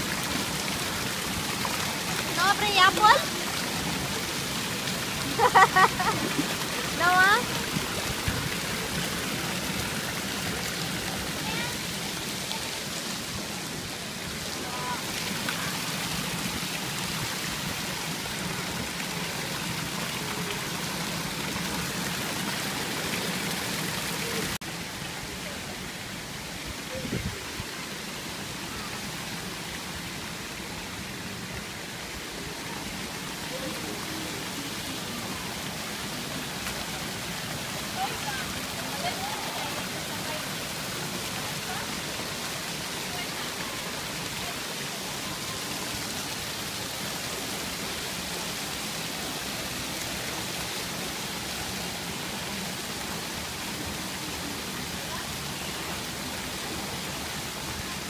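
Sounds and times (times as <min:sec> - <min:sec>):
water rushing and splashing: 0:00.0 - 0:58.0.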